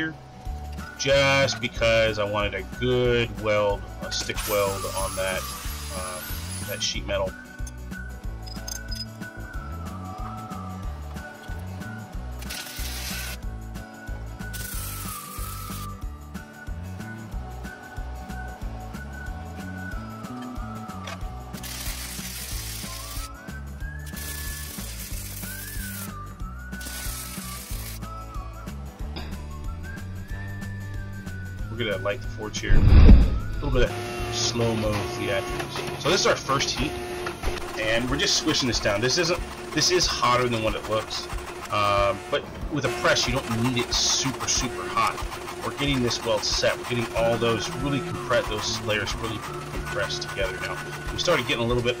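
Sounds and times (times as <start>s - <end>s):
background music: 0.0s - 52.0s
welding arc crackle: 4.4s - 6.8s, 12.4s - 13.4s, 14.4s - 15.9s, 21.6s - 23.3s, 24.1s - 26.2s, 26.8s - 28.0s.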